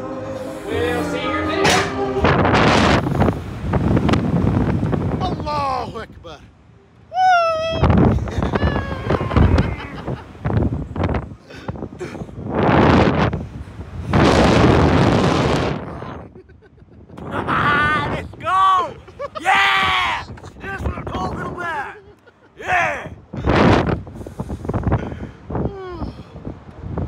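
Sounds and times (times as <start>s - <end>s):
wind rushing over microphone: 0.0s - 6.4s, 7.6s - 22.0s, 22.6s - 27.0s
people yelling: 7.2s - 10.2s, 17.3s - 22.0s, 22.6s - 23.2s
person screaming: 17.3s - 20.4s.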